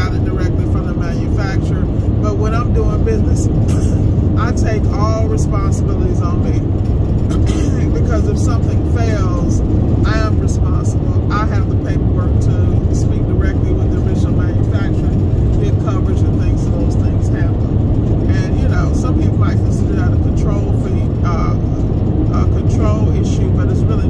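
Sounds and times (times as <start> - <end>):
road and engine rumble in car: 0.0 - 24.0.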